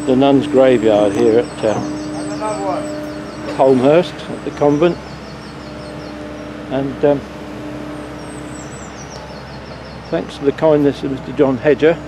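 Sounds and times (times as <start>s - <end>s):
distant motor traffic: 0.0s - 12.0s
small bird singing: 0.0s - 12.0s
steady low hum: 0.0s - 12.0s.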